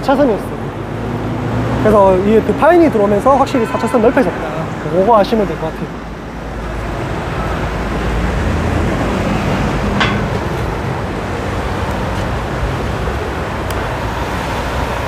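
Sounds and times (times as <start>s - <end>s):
passing cars: 0.0s - 15.0s.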